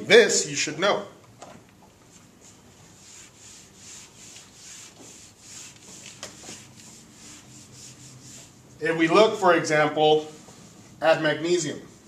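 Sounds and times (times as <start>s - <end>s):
eraser wiping whiteboard: 2.1s - 8.8s.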